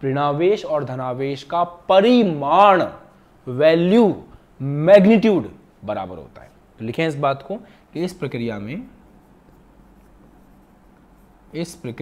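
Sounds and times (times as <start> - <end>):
low steady hum: 0.0 - 12.0
chalk writing on blackboard: 8.9 - 12.0.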